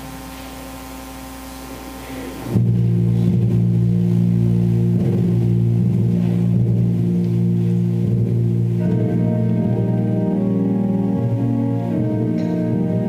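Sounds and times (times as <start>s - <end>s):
church organ low chord: 0.0s - 13.0s.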